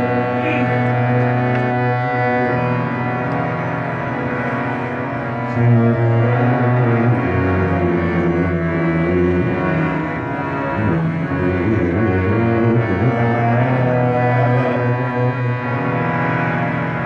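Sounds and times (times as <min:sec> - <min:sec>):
harmonium melody: 0:00.0 - 0:17.0
tabla: 0:00.0 - 0:17.0.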